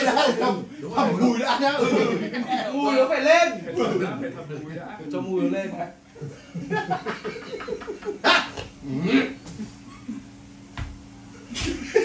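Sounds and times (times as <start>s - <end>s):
men laughing: 0.0s - 4.8s, 6.1s - 10.5s, 11.4s - 12.0s.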